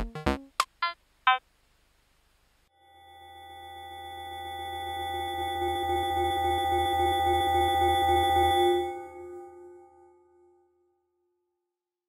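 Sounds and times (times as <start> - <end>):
low hum: 2.8 - 10.5
synthesized drone chord: 2.8 - 10.7.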